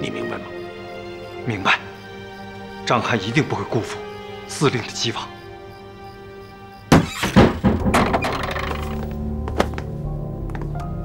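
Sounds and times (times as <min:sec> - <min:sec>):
background music: 0:00.0 - 0:11.0
heavy thuds: 0:06.9 - 0:09.9.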